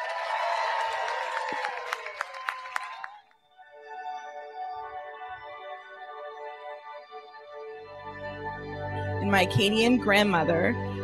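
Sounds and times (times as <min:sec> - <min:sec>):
crowd clapping and cheering: 0:00.0 - 0:03.4
soft music with held notes: 0:03.5 - 0:11.0.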